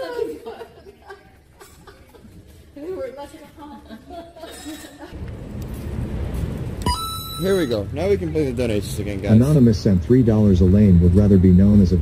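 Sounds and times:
traffic rumble: 5.0 - 12.0
short electronic alert tone: 6.8 - 7.8.

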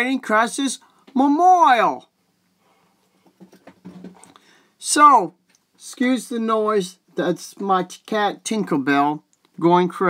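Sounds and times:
faint knocks and scuffles: 3.1 - 4.3.

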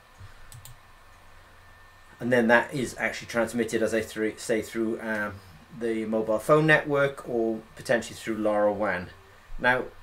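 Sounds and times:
computer control clicks: 0.1 - 0.8.

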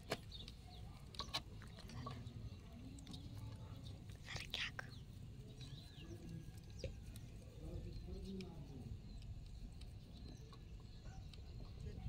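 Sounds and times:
low steady background hum: 0.0 - 12.0.

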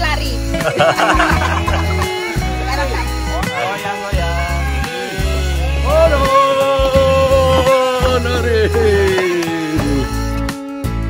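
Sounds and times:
background music with deep bass: 0.0 - 11.0
woman laughing: 0.4 - 3.6.

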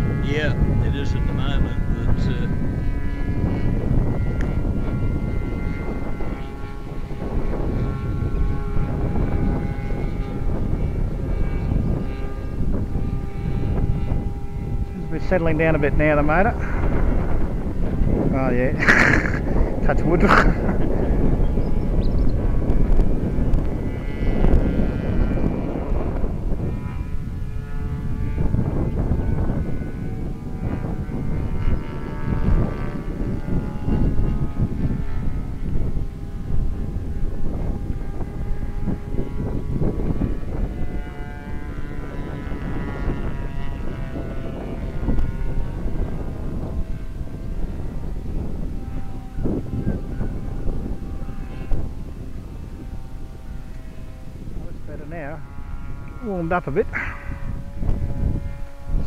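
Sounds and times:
model airplane engine and propeller: 0.0 - 59.0
wind rumble on microphone: 0.0 - 59.0.

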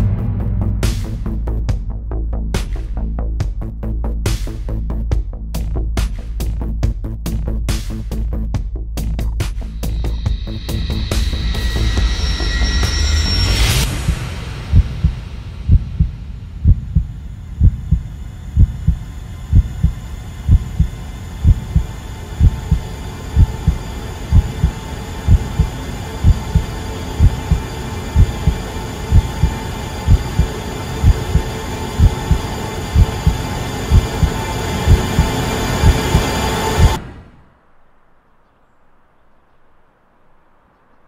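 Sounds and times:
loud swell: 0.0 - 2.0, 9.8 - 37.8
steady dark hum: 0.0 - 5.0, 9.1 - 38.0
low double heartbeat thump: 13.8 - 37.0.

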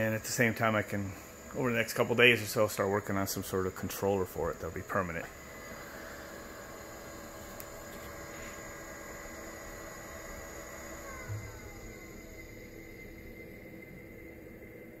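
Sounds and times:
heat pump humming with tones: 0.0 - 15.0.

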